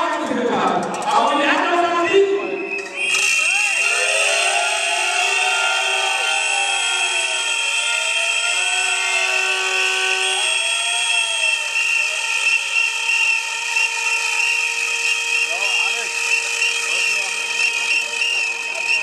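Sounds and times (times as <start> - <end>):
whistles and noisemakers blowing: 2.4 - 19.0.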